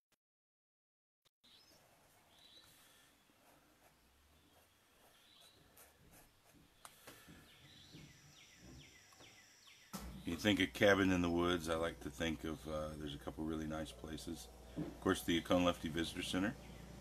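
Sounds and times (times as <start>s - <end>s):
distant bird singing: 1.4s - 17.0s.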